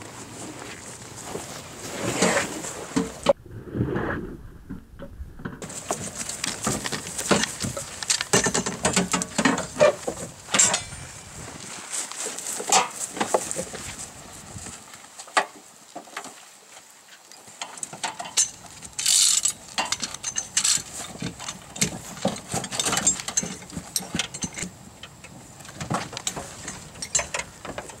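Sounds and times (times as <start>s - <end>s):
metal tools clanking on car: 6.6s - 11.5s, 17.6s - 28.0s.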